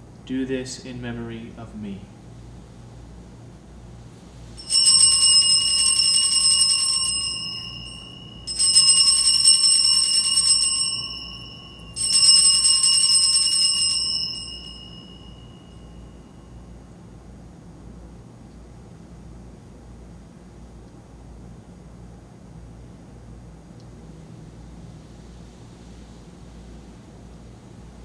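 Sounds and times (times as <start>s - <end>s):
altar bells ringing: 4.6s - 16.6s.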